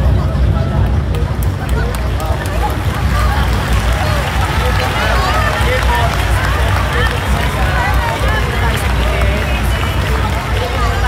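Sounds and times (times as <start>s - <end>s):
crowd chatter: 0.0s - 11.0s
steady low rumble: 0.0s - 11.0s.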